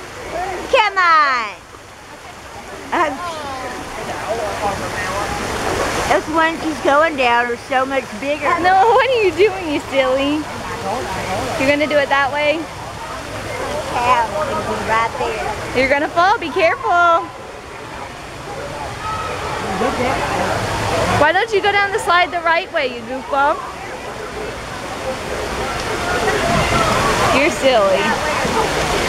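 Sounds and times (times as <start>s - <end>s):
running water: 0.0s - 29.0s
faint indistinct voices: 1.6s - 29.0s.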